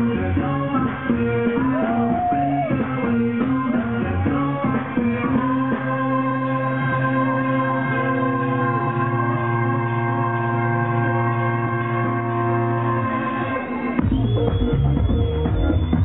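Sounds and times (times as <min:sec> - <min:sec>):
live band music: 0:00.0 - 0:16.0.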